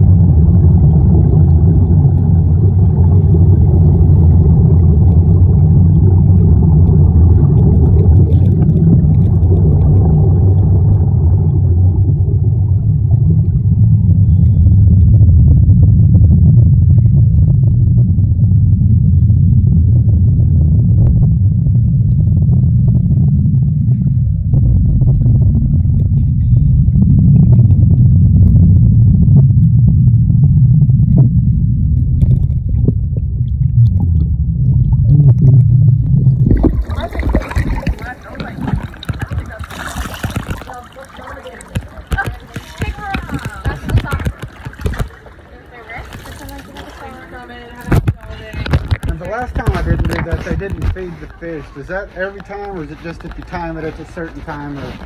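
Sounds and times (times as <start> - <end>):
underwater air bubbling rumble: 0.0 - 55.0.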